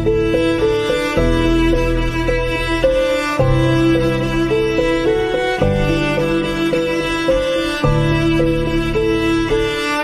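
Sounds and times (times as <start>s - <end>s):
bowed cello melody: 0.0s - 10.0s.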